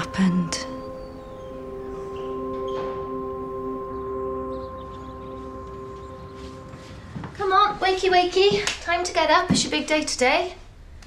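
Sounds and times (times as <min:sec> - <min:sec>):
drone of held tones: 0:00.0 - 0:08.4.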